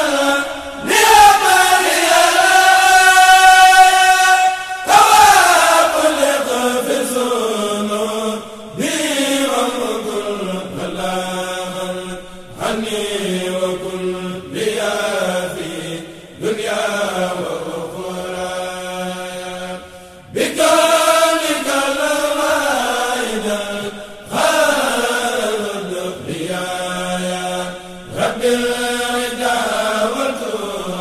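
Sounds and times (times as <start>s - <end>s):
devotional chanting: 0.0s - 31.0s.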